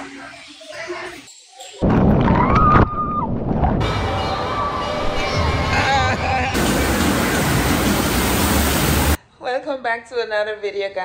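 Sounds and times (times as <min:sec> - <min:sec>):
loud steady rushing hiss: 0:06.3 - 0:09.2
woman speaking: 0:09.4 - 0:11.0.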